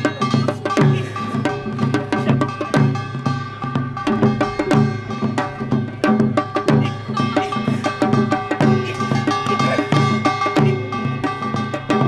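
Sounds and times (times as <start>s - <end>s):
drum strokes in fast rhythm: 0.0s - 12.0s.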